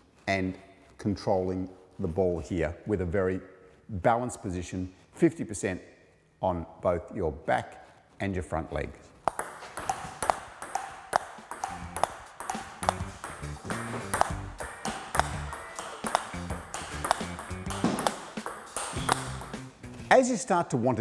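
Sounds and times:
table tennis ball hits: 0:09.2 - 0:19.7
background music: 0:09.2 - 0:21.0.

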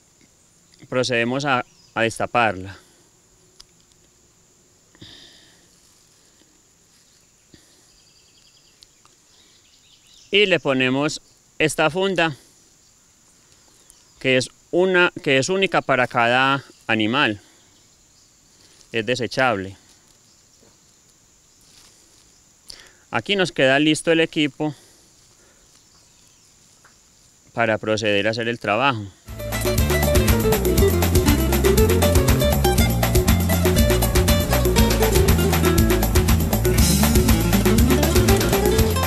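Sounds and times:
insect chirping trills: 0:00.0 - 0:39.0
insects buzzing: 0:00.0 - 0:39.0.

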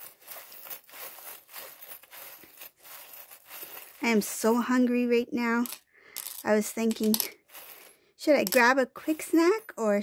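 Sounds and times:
cloth bag rustling: 0:00.0 - 0:04.6, 0:07.4 - 0:07.9.

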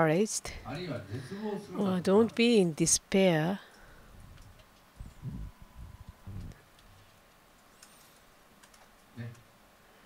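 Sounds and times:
faint clicks: 0:06.4 - 0:09.5.

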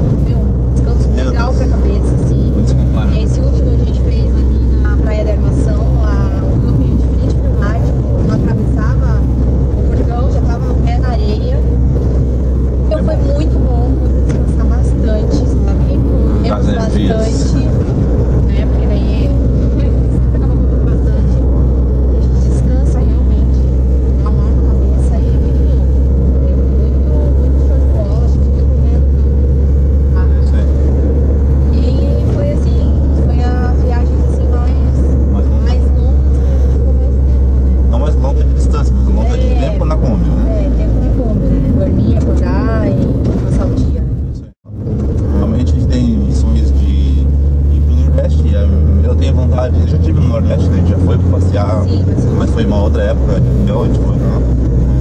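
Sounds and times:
people talking: 0:00.0 - 0:11.8, 0:12.8 - 0:29.4, 0:30.1 - 0:31.0, 0:31.6 - 0:54.6
road and engine drone: 0:00.0 - 0:55.0.

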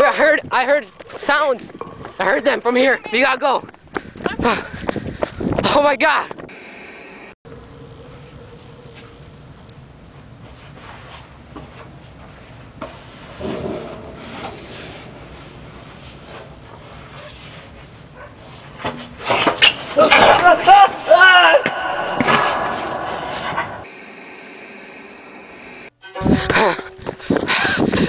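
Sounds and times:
shrill screaming: 0:20.1 - 0:23.8.

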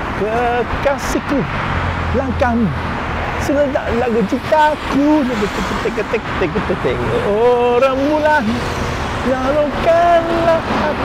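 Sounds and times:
man singing pop song: 0:00.0 - 0:01.5, 0:03.4 - 0:11.0
road traffic: 0:00.0 - 0:11.0.

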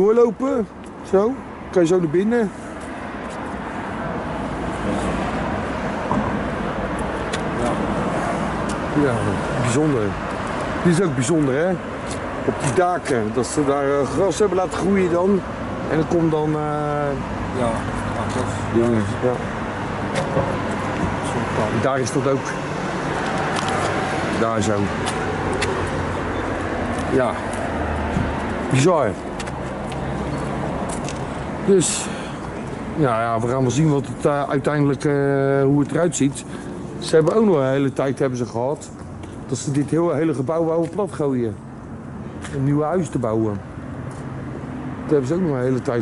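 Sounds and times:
road traffic passing cars: 0:00.0 - 0:46.0.

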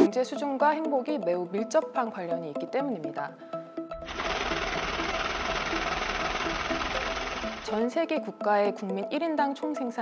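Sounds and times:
banknote counting machine whirring: 0:04.1 - 0:07.8.

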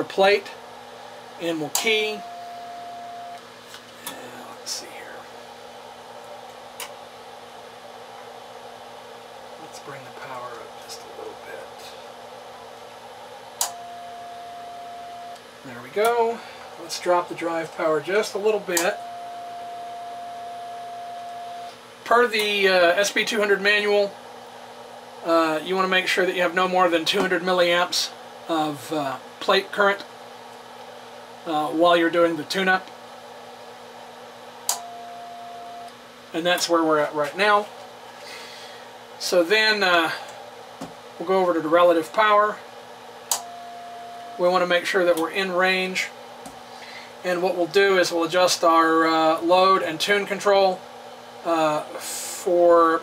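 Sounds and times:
faint low hum: 0:00.0 - 0:50.8
cooling fans whooshing: 0:00.0 - 0:53.0
steady beep: 0:01.9 - 0:03.4, 0:13.6 - 0:15.4, 0:18.8 - 0:21.7, 0:34.8 - 0:35.9, 0:43.4 - 0:44.5
click: 0:13.6 - 0:13.8, 0:43.3 - 0:43.5.

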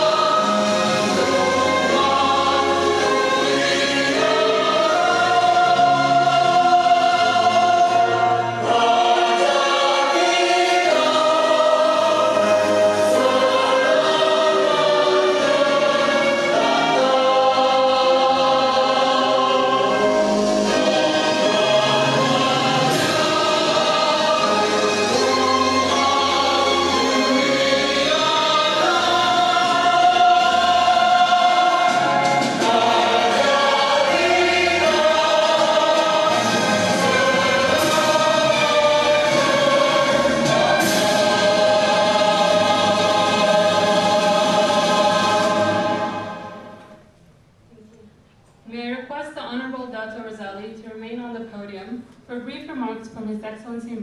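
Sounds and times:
choir singing with orchestra: 0:00.0 - 0:47.1.

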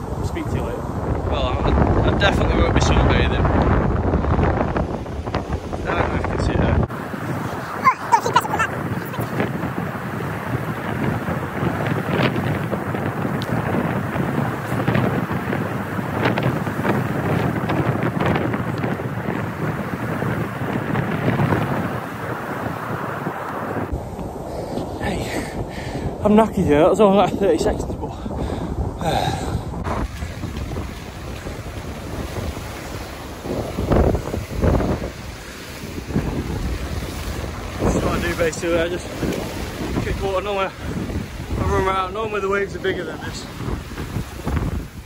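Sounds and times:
breaking surf: 0:00.0 - 0:45.0
wind buffeting microphone: 0:00.0 - 0:45.0.

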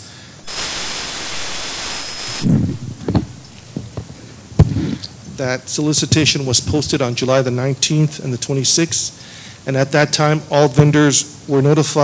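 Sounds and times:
thin high whine: 0:00.0 - 0:03.7
loud static hiss: 0:00.0 - 0:12.0.

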